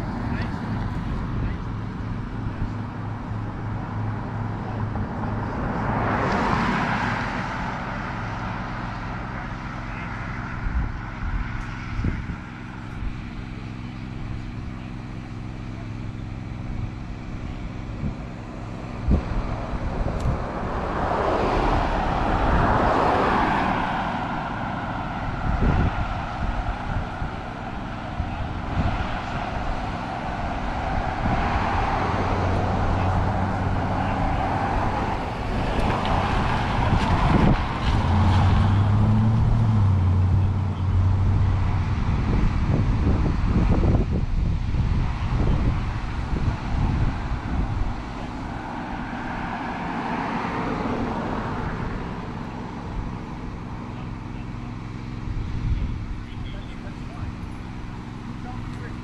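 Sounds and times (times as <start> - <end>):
cars driving past: 0.0 - 59.0
low engine hum: 0.0 - 59.0.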